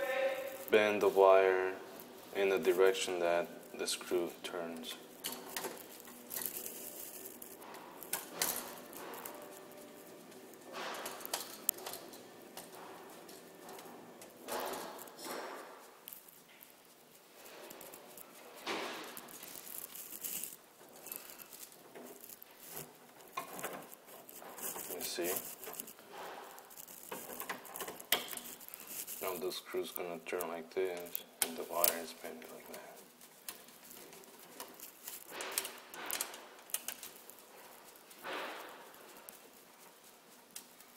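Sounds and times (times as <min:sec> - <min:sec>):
gloved hands handling stiff wire: 0:00.0 - 0:40.9
screwdriver turning screws: 0:19.2 - 0:29.2.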